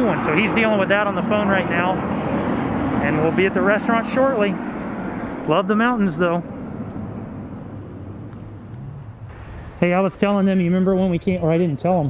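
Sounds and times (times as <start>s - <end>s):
outdoor low hum: 0.0s - 12.0s.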